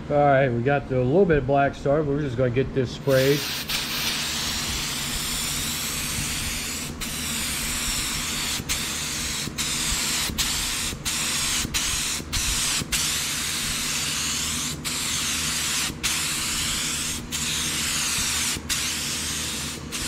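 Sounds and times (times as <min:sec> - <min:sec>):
paint spray gun hissing: 0:03.1 - 0:20.0.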